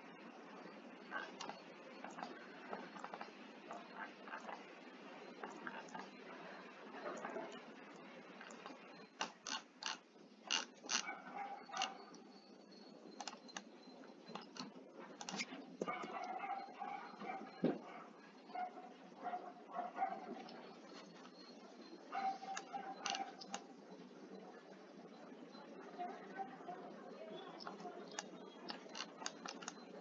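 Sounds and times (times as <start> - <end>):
computer mouse clicking: 13.2 - 13.6, 22.5 - 23.7, 27.6 - 29.9
scroll wheel ticks: 27.6 - 29.8.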